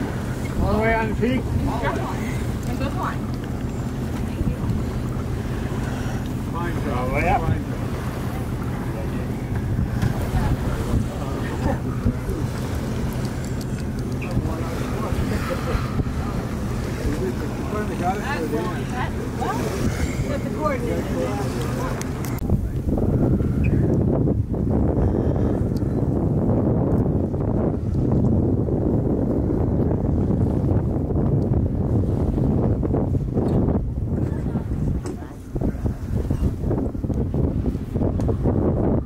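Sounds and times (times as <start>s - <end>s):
water along a hull: 0.0s - 39.0s
wind on microphone: 0.0s - 39.0s.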